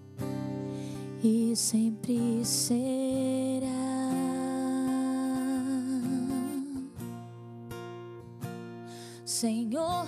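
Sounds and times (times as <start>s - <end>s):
strummed acoustic guitar: 0.0s - 10.0s.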